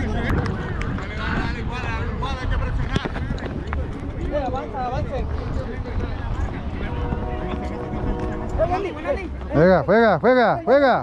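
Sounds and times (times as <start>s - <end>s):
wind on microphone: 0.0s - 9.5s.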